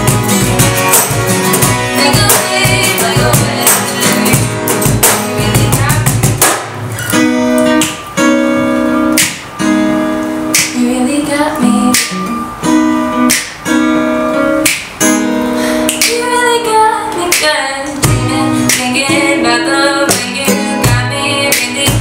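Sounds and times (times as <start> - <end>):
acoustic guitars strumming: 0.0 - 22.0
cajon beat: 0.0 - 22.0
woman singing: 1.6 - 6.4, 10.6 - 12.5, 15.9 - 22.0.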